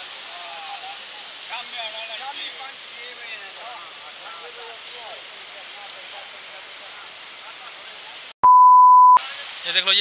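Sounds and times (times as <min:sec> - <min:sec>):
rain hissing: 0:00.0 - 0:08.4, 0:09.2 - 0:10.0
running floodwater: 0:00.0 - 0:08.4, 0:09.2 - 0:10.0.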